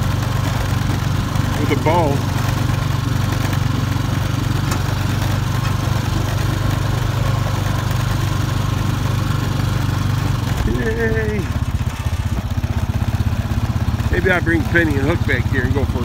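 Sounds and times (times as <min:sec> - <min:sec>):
atv engine running: 0:00.0 - 0:16.0.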